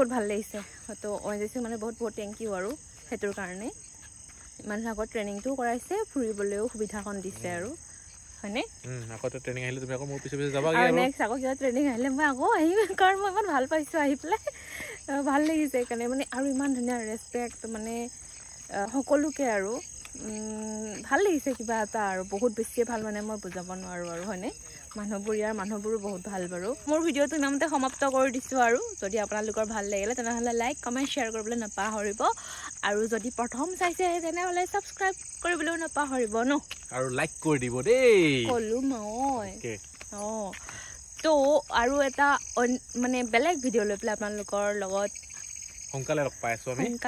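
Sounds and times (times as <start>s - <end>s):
woman talking: 0.0s - 3.8s, 4.6s - 7.8s, 8.4s - 8.8s, 10.6s - 36.7s, 38.5s - 45.1s, 46.8s - 47.0s
crickets trilling: 0.0s - 47.0s
person talking: 10.5s - 11.2s.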